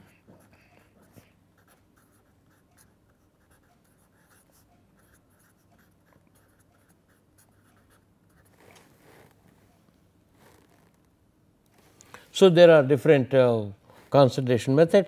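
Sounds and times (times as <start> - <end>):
pen scratching on paper: 0.0 - 9.3.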